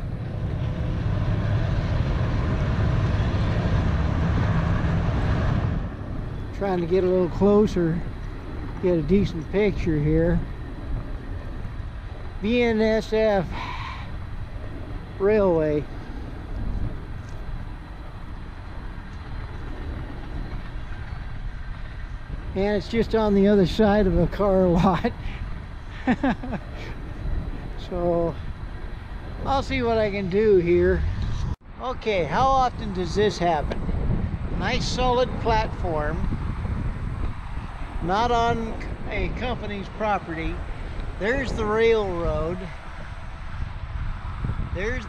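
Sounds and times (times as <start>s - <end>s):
vehicle rumble: 0.0s - 45.0s.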